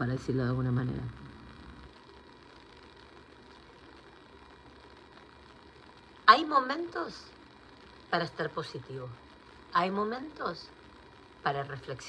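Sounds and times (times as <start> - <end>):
woman's voice: 0.0 - 1.4, 6.2 - 7.4, 8.1 - 10.8, 11.4 - 12.0
faint steady hiss: 0.0 - 12.0
low hum: 0.0 - 12.0.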